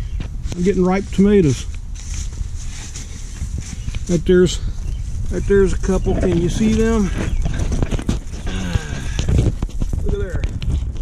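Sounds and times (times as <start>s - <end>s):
handling rumble: 0.0s - 11.0s
leaves rustling against camera: 0.0s - 11.0s.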